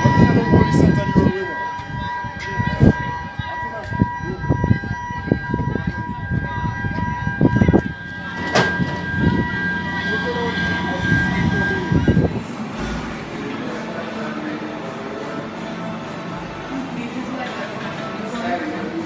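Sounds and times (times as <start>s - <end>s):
wind: 0.0s - 19.0s
steady high-pitched whine: 5.8s - 13.9s.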